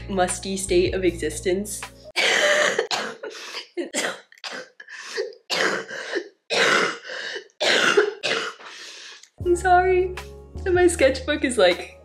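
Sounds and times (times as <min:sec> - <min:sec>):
woman coughing: 0:02.2 - 0:08.7.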